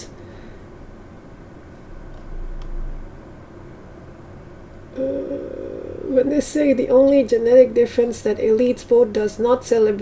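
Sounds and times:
low room noise: 0.0 - 10.0
woman's hesitation sound: 5.0 - 6.3.

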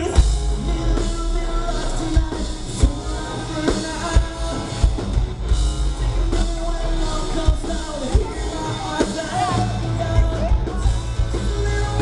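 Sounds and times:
live rock band playing: 0.0 - 12.0
person singing: 0.0 - 12.0.

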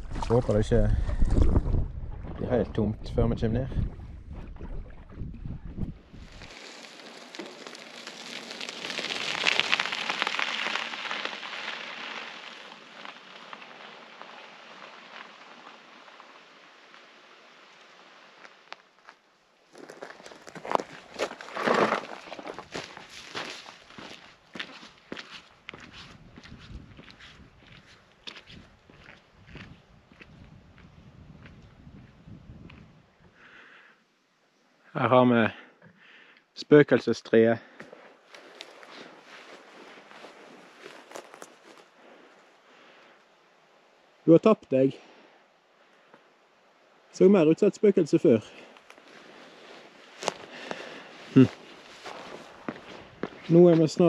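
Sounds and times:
footsteps crunching on gravel: 6.2 - 15.4, 18.4 - 32.1, 37.8 - 41.9, 48.8 - 54.0
foot scraping on rock: 19.8 - 28.6, 49.0 - 54.0.

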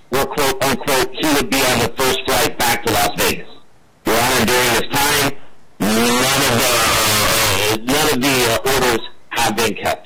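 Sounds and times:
man talking over video call: 0.1 - 10.0.

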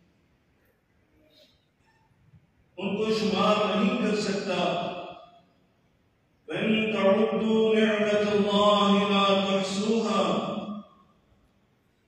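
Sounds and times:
man chanting recitation: 2.8 - 5.0, 6.5 - 10.6.

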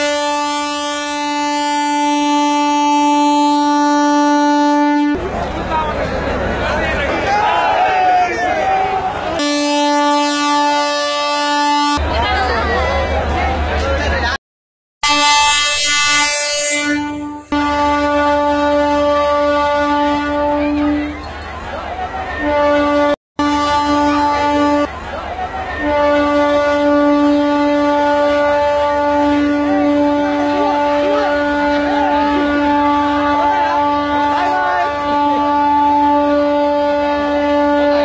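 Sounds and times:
train horn blast: 0.0 - 5.2, 9.4 - 12.0, 15.0 - 21.2, 22.2 - 25.0, 25.6 - 38.0.

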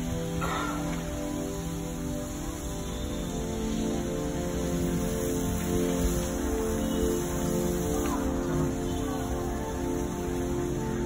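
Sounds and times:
calm background music: 0.0 - 11.0.

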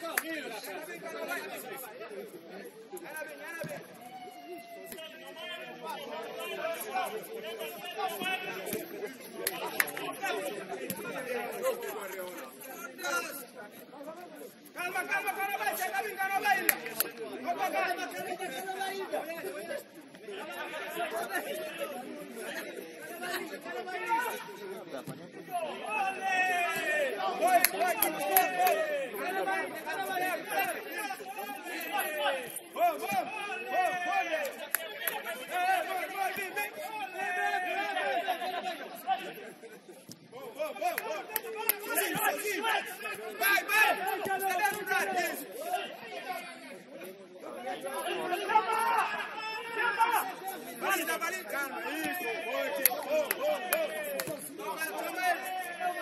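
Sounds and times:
people talking and calling out: 0.0 - 56.0.

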